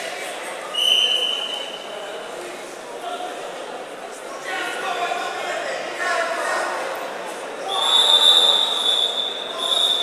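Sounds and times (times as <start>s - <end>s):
referee's whistle blast: 0.8s - 1.8s, 7.7s - 10.0s.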